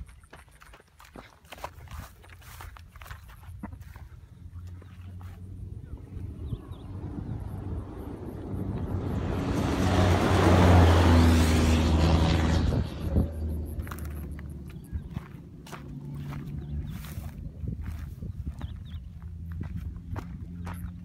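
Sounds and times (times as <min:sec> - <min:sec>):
rally car passing on gravel: 0:04.4 - 0:21.0.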